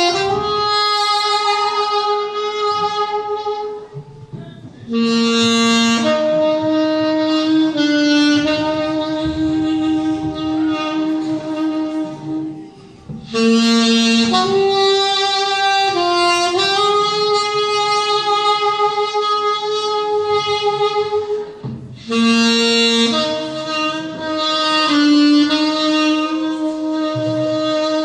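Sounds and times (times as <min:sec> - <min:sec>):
saxophone slow melody: 0:00.0 - 0:28.0.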